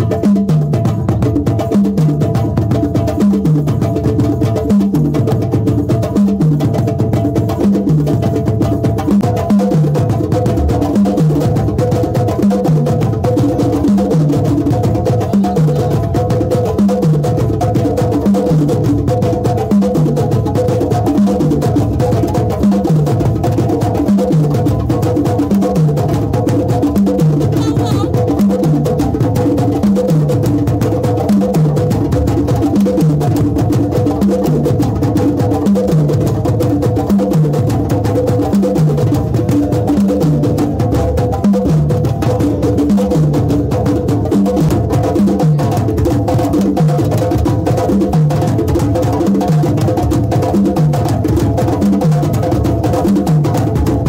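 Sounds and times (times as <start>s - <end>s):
sabar drums playing rhythm: 0.0s - 54.0s.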